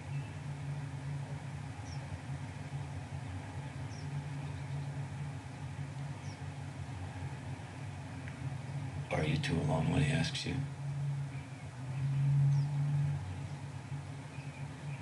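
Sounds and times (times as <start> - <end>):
faint high bird chirp: 0.0 - 0.5, 1.8 - 2.1, 3.8 - 5.0, 6.2 - 6.5, 11.3 - 15.0
steady low hum: 0.0 - 15.0.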